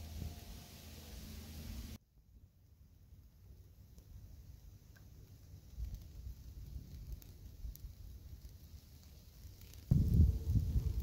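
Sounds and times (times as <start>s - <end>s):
wind rumble on microphone: 9.4s - 11.0s.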